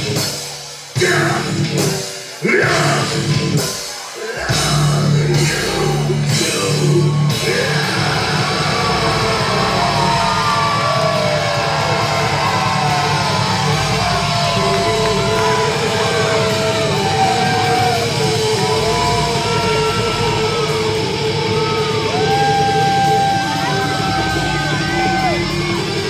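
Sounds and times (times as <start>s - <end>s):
live heavy rock band: 0.0s - 26.0s.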